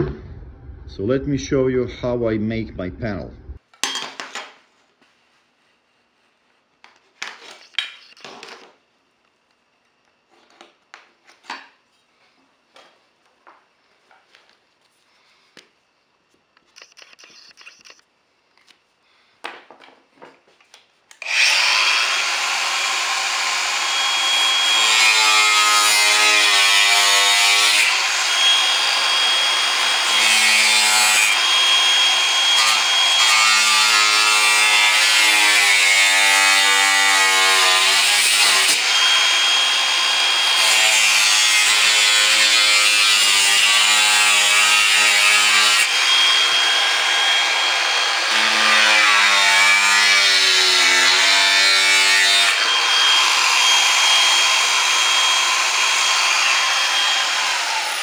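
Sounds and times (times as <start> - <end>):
angle grinder cutting panel: 21.2 - 58.0.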